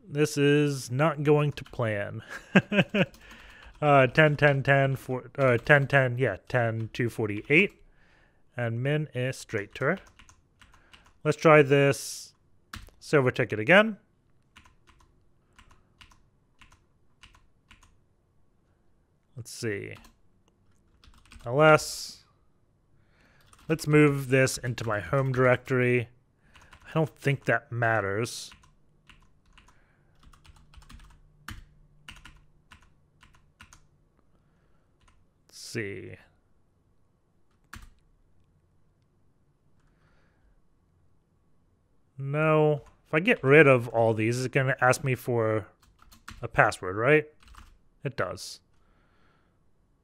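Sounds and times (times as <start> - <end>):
typing on keyboard: 2.8 - 4.7, 5.4 - 6.0, 9.5 - 11.2, 14.5 - 18.0, 20.8 - 21.5, 23.4 - 24.1, 24.7 - 25.7, 26.5 - 26.9, 28.5 - 33.9, 37.5 - 38.0, 45.8 - 46.4, 47.4 - 47.8.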